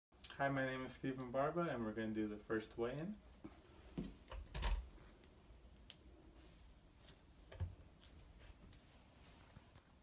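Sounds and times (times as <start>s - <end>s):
bare footsteps: 3.4s - 4.3s.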